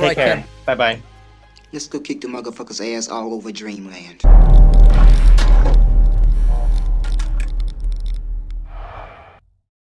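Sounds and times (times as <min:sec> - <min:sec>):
deep low rumble: 0:04.2 - 0:09.1
crackles: 0:04.3 - 0:09.1.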